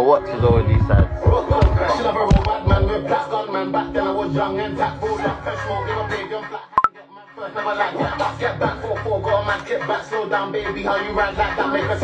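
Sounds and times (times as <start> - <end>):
rapping over a beat: 0.0 - 12.0.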